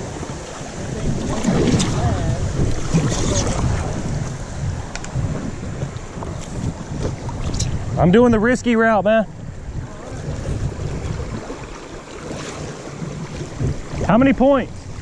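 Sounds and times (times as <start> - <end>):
water splashing against paddle board: 0.0 - 7.9, 9.7 - 15.0
wind buffeting microphone: 0.0 - 15.0
paddle knocking on board: 1.1 - 7.4, 10.1 - 14.2.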